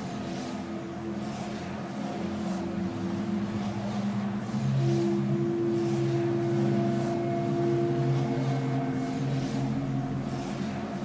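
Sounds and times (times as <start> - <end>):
low sci-fi drone: 0.0 - 11.0
soft pulsing whooshes: 0.0 - 11.0.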